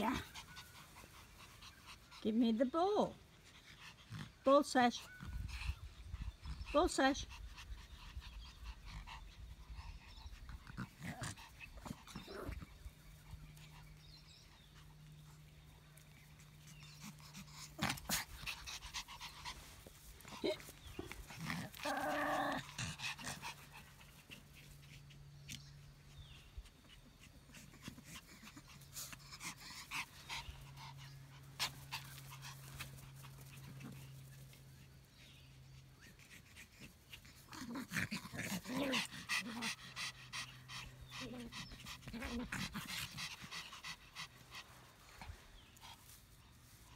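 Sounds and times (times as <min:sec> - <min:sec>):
dogs panting: 0:00.0 - 0:46.9.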